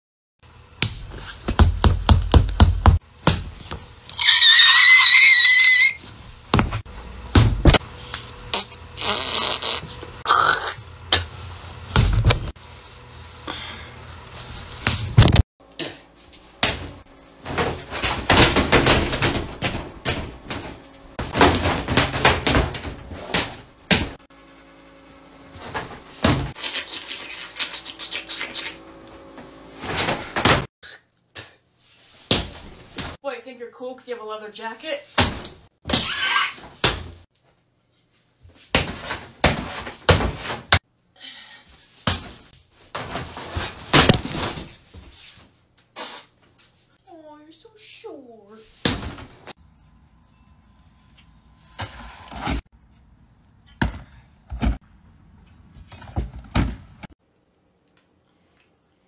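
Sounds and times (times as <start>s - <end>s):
high-pitched wavering shriek: 4.2s - 6.0s.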